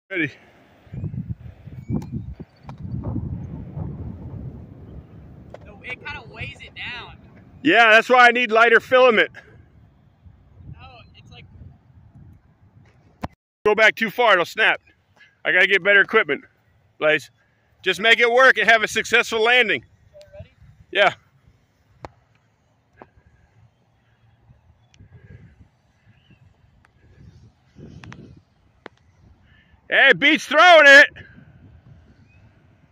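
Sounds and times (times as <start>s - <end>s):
wind buffeting microphone: 0.8s - 13.4s, 18.6s - 22.0s, 23.0s - 29.9s, 31.1s - 32.9s.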